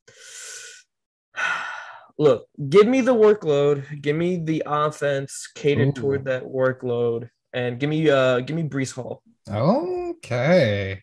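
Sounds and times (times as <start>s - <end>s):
man speaking: 2.2s - 11.0s.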